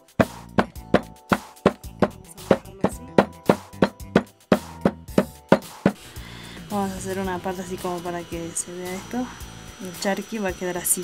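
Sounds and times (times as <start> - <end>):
faint background music: 0.0 - 11.0
stone pounding meat on wood: 0.2 - 6.0.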